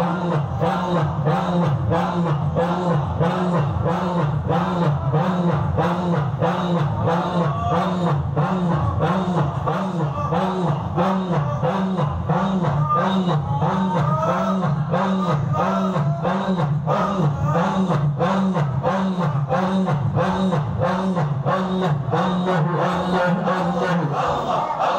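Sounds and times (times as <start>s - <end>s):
men chanting in unison: 0.0s - 24.9s.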